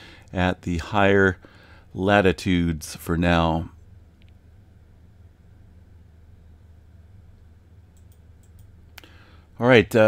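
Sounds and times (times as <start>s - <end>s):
steady low hum: 0.0s - 10.0s
computer mouse clicks: 7.9s - 9.1s.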